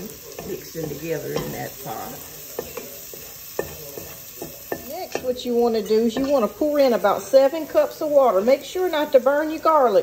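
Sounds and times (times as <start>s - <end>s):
garlic sizzling in butter: 0.0s - 10.0s.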